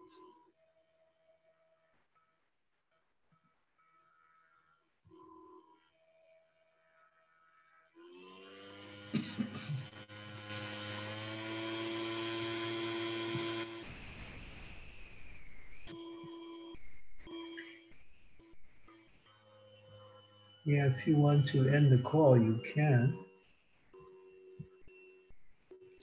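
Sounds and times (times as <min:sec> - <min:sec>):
sustained tone with overtones: 0:03.4 - 0:26.0
hiss: 0:13.8 - 0:15.9.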